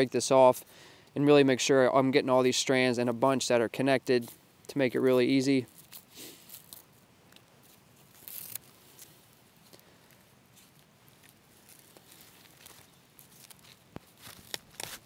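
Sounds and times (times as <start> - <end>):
bark tearing: 5.7 - 9.2, 10.6 - 15.0.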